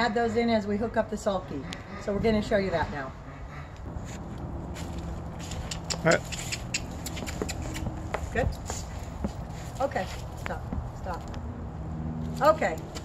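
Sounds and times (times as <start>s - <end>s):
hooves clopping on pavement: 3.8s - 13.0s.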